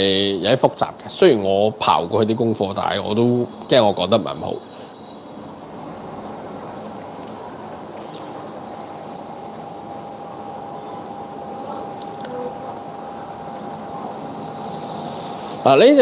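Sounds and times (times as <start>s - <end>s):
room hum: 0.0s - 16.0s
faint steady tone: 3.1s - 15.9s.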